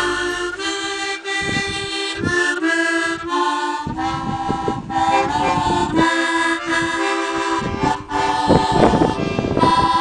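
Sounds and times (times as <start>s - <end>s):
harmonica held chords: 0.0s - 10.0s
wind rumbling on microphone: 0.0s - 10.0s.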